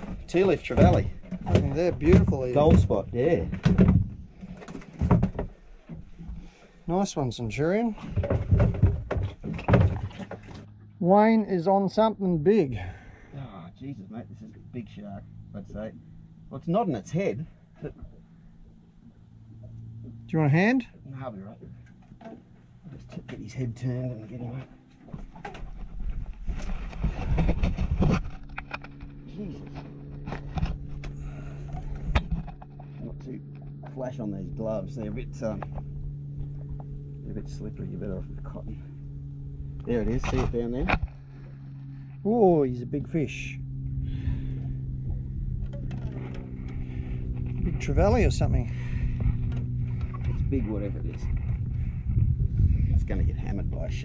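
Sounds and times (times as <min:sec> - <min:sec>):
knocks and scrapes on boat side: 0:00.0 - 0:06.5, 0:07.8 - 0:10.7, 0:25.0 - 0:34.0
low mechanical hum: 0:00.0 - 0:54.0.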